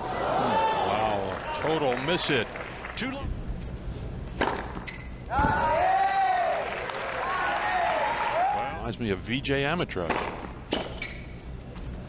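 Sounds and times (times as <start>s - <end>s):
stadium hum: 0.0s - 12.0s
tennis racket hitting ball: 4.4s - 5.0s.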